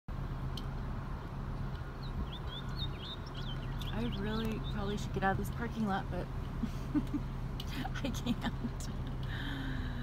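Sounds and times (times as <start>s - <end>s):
small birds chirping: 1.0s - 6.2s.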